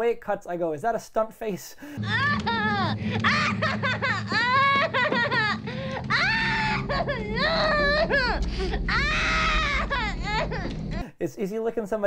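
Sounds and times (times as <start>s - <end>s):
low steady hum: 1.9s - 11.1s
woman sobbing: 2.0s - 11.1s.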